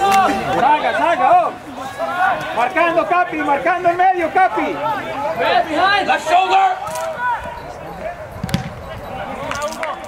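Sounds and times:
people shouting: 0.0 - 9.4
soccer ball being kicked: 8.4 - 8.8.

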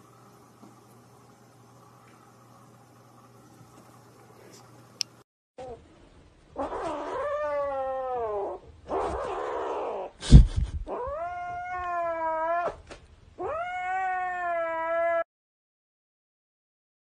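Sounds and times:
cat yowling: 6.6 - 10.2, 10.9 - 12.8, 13.4 - 15.3.

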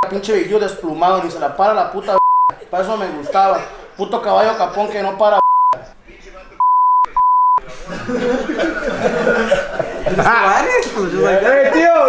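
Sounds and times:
men laughing and talking: 0.3 - 5.4, 6.9 - 12.0
censor bleeps: 2.2 - 2.6, 5.4 - 5.8, 6.6 - 7.6.

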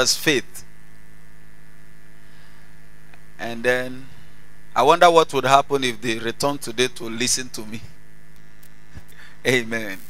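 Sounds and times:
electrical mains hum: 0.0 - 10.0
faint hiss: 0.0 - 10.0.

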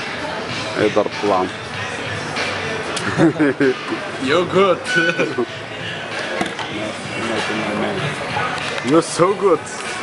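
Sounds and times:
chatter in echoing hall: 0.0 - 10.0.

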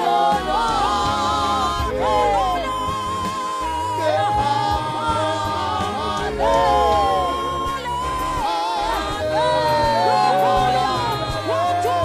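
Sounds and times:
backing singers: 0.0 - 12.0
woman singing lead: 0.0 - 12.0.

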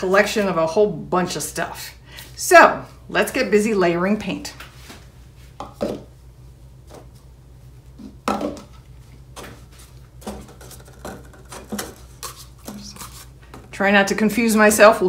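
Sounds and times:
steady low hum: 0.0 - 15.0
plastic cups knocking on a table: 8.2 - 8.8, 10.2 - 12.1.

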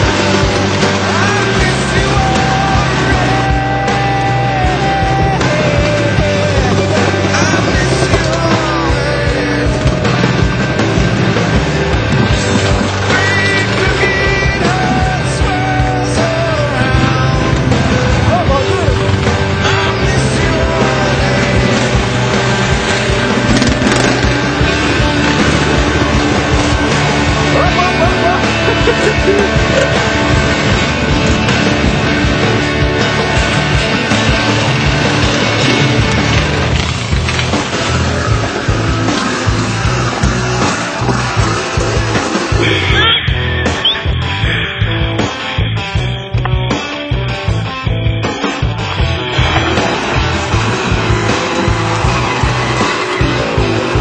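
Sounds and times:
backing music with drum beat: 0.0 - 54.0
electric guitar: 0.0 - 54.0.

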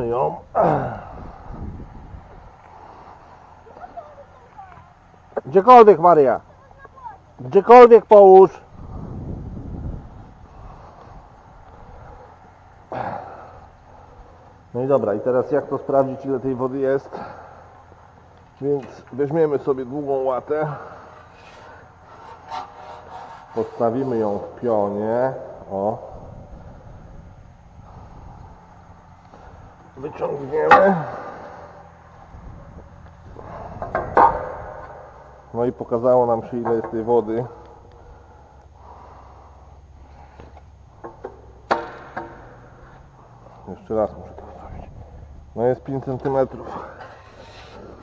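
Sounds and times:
low rumbling handling noise: 0.0 - 7.6, 8.2 - 48.0
concrete lid scraping: 21.2 - 24.6.

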